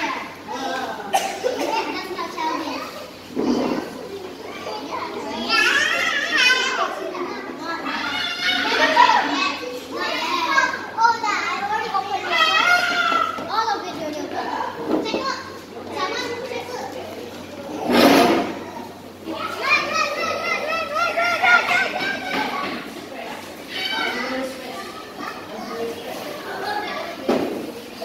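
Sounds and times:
girls chattering and calling out: 0.0 - 28.0.

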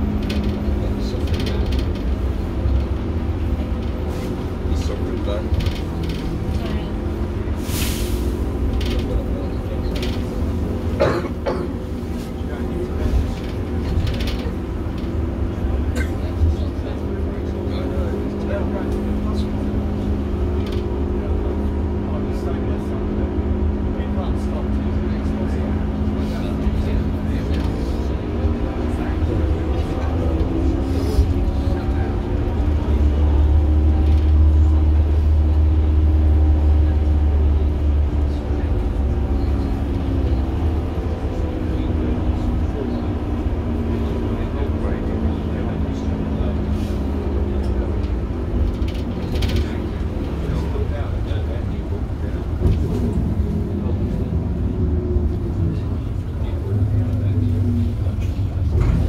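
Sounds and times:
bus diesel engine running: 0.0 - 59.0.

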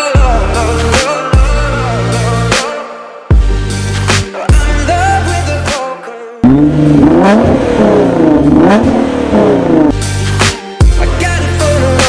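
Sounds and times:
bass-heavy hip-hop music: 0.0 - 12.0
car engine revving: 6.4 - 10.1.

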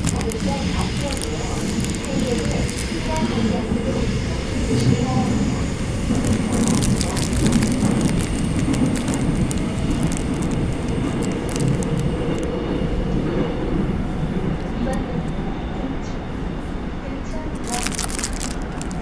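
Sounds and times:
clicks and rattles: 0.0 - 3.4, 6.1 - 12.5, 17.6 - 19.0
train low rumble: 0.0 - 19.0.

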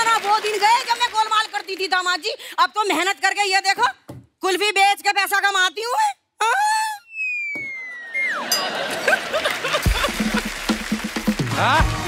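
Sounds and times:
whistle tone sliding downward: 7.0 - 8.6
studio audience laughter: 8.0 - 10.7.

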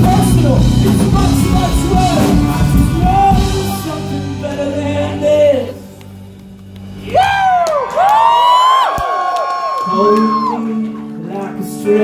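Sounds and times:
rock band sustained chord: 0.0 - 6.8
crowd whooping and cheering: 6.9 - 11.2.

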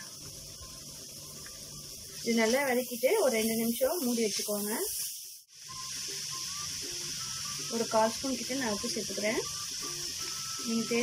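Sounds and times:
carrot sizzling in a pan: 0.0 - 11.0.

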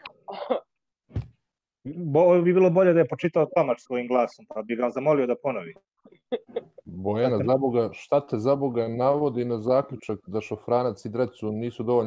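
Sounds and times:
woman laughing: 0.3 - 0.6, 6.3 - 6.8
man speaking: 1.9 - 5.8, 6.8 - 12.0.

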